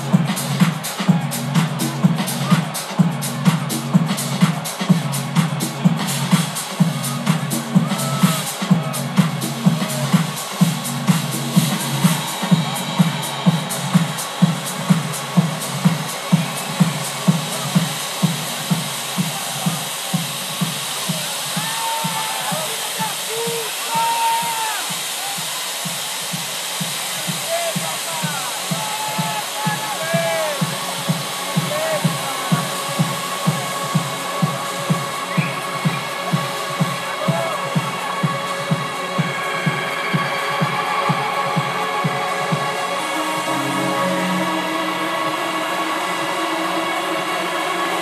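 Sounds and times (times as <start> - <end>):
kick drum beat: 0.0 - 42.8
electronic dance music: 0.0 - 48.0
crowd shouts and whoops: 7.3 - 9.1, 21.1 - 25.8, 27.4 - 30.8, 31.6 - 32.9, 35.3 - 38.5.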